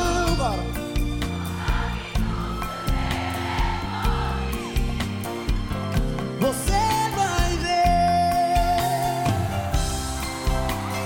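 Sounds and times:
live band playing: 0.0s - 11.0s
steady drum beat: 0.0s - 11.0s
crowd noise: 0.6s - 7.1s, 8.6s - 11.0s.

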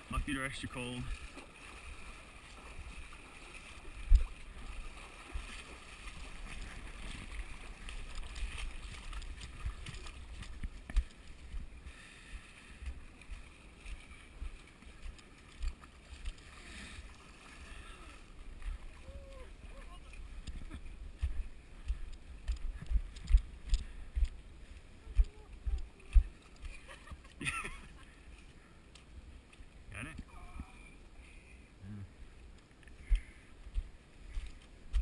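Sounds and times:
feet wading through muddy water: 0.0s - 35.0s.

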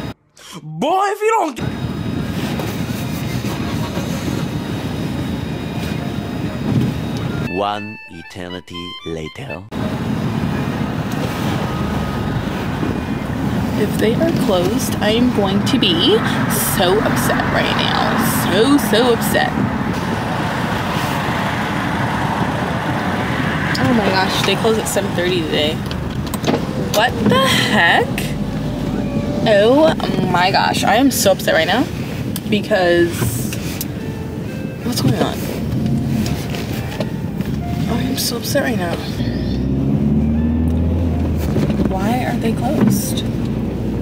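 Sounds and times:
man's voice: 7.5s - 9.7s
car cabin rumble and hiss: 9.8s - 44.0s.

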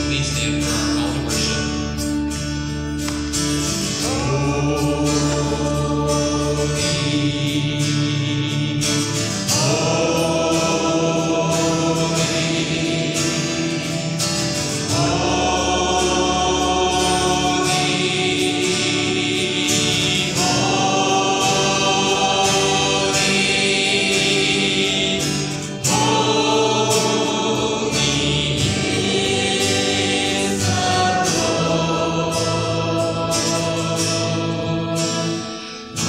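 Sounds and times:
upright bass: 0.0s - 35.3s
acoustic guitar: 0.0s - 36.0s
voices singing in harmony: 3.6s - 36.0s.

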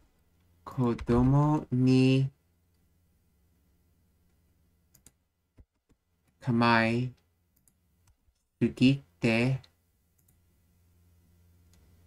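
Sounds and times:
faint low hum: 0.0s - 12.0s
person speaking: 0.6s - 2.4s, 6.4s - 7.2s, 8.6s - 9.8s
faint mouse clicks: 10.2s - 10.4s.

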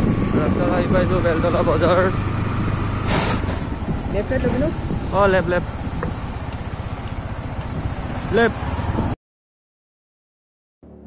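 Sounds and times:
low vehicle rumble: 0.0s - 9.2s.

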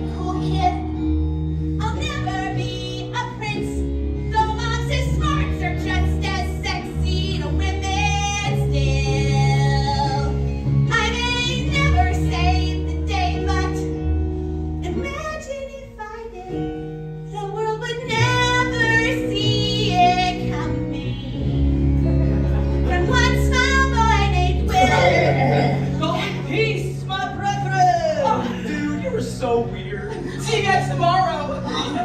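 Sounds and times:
instrumental accompaniment: 0.0s - 32.0s
woman singing: 1.8s - 14.0s, 14.8s - 21.6s, 22.9s - 28.7s.

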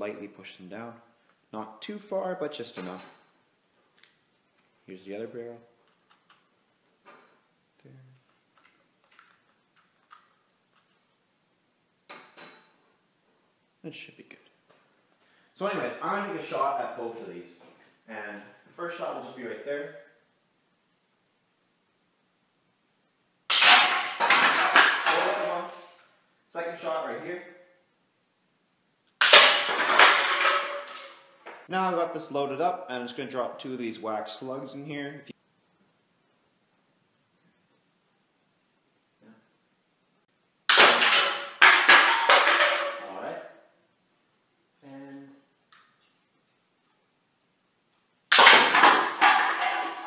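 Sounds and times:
pellets hitting cans: 23.5s - 25.8s, 29.2s - 31.3s, 40.7s - 43.2s, 48.3s - 50.0s.

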